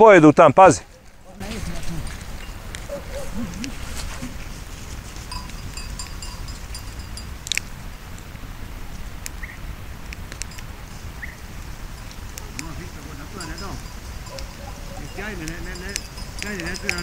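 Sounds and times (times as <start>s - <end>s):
wind rumble on microphone: 0.9s - 17.0s
faint high tinkling: 5.2s - 7.4s, 13.1s - 14.4s, 15.0s - 17.0s.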